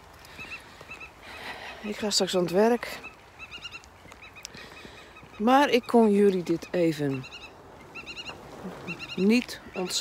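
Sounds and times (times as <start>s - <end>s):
distant birds calling: 0.0s - 10.0s.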